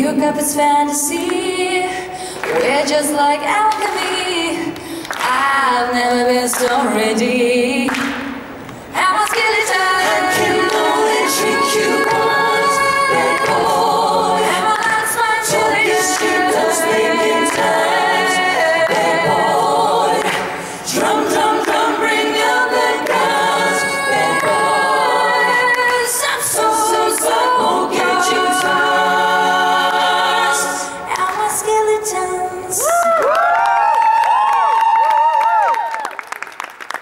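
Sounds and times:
woman singing lead: 0:00.0 - 0:29.2, 0:29.9 - 0:33.6
group singing a cappella: 0:00.0 - 0:32.8.

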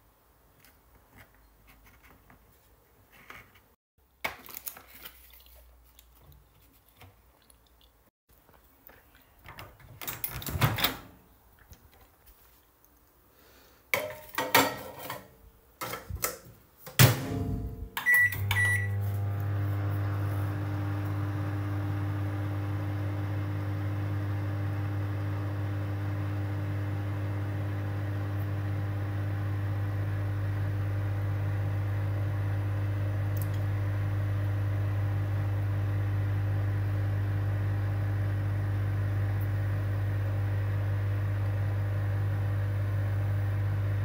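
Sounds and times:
microwave humming: 0:17.0 - 0:44.0
keypad beeps: 0:18.0 - 0:19.0.

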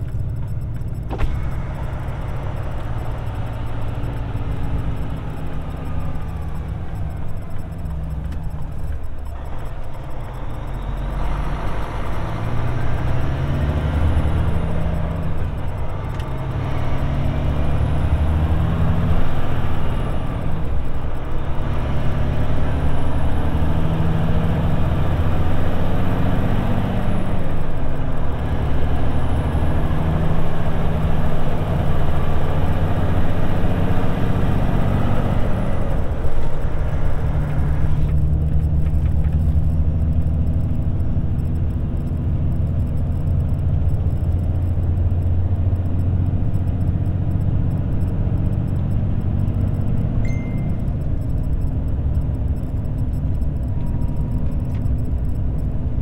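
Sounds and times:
diesel truck engine accelerating: 0:00.0 - 0:56.0.

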